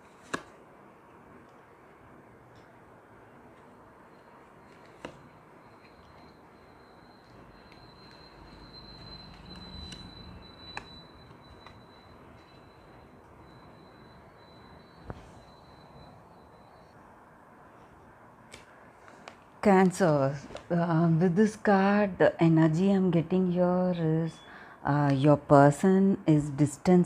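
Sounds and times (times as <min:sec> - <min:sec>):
faint high-pitched whine: 0:00.0 - 0:27.0.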